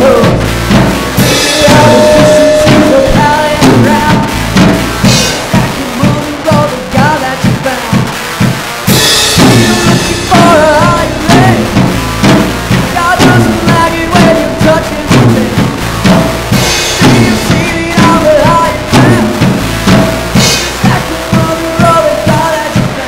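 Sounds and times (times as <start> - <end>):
rock band playing: 0.0 - 23.0
cymbal crash: 0.8 - 5.7, 8.9 - 20.9.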